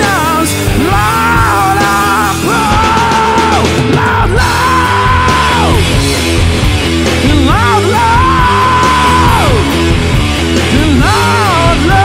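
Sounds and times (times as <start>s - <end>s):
loud rock backing track: 0.0s - 12.0s.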